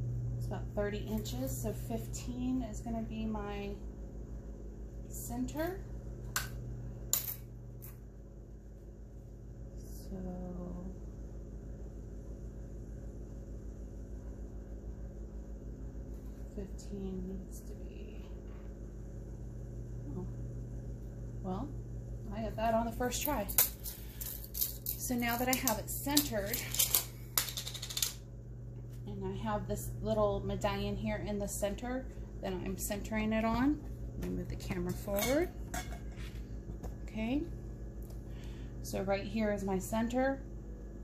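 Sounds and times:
low electrical hum: 0.0 - 41.0
rattle of small hard objects: 23.4 - 25.7.

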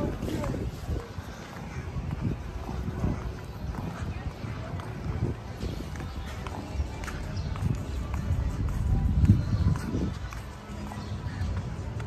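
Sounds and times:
indistinct background voices: 0.0 - 12.0
wind on microphone: 0.0 - 12.0.

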